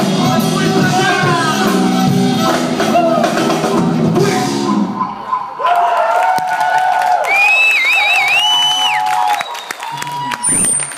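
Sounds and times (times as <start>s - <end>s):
live rock band playing: 0.0s - 5.1s
audience cheering and shouting: 0.0s - 10.9s.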